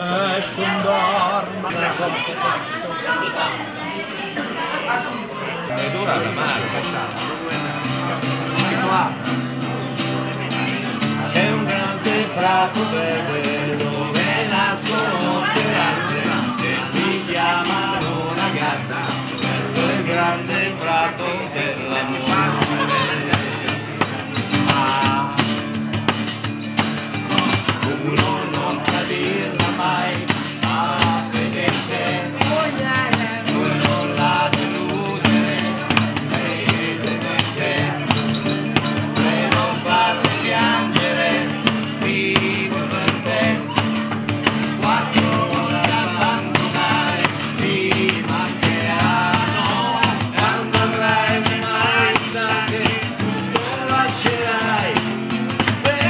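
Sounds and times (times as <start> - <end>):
melodic voices singing: 0.0 - 56.0
live pop band: 6.2 - 56.0
hand percussion beat: 6.5 - 9.2, 10.7 - 56.0.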